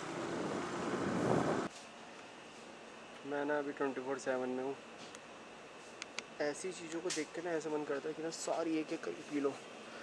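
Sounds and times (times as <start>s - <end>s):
scooter road noise: 0.0s - 1.7s
wind on microphone: 0.0s - 1.7s.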